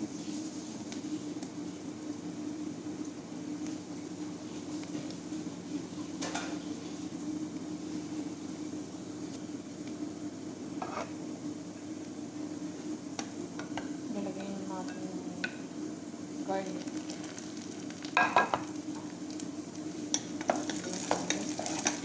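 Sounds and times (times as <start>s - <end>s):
onions sizzling in a pot: 0.0s - 22.0s
steady low hum: 0.0s - 22.0s.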